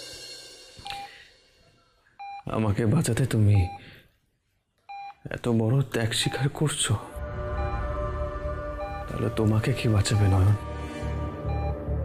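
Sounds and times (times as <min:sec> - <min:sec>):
patient monitor beeping: 0:02.2 - 0:02.6, 0:04.9 - 0:05.2, 0:06.1 - 0:12.0.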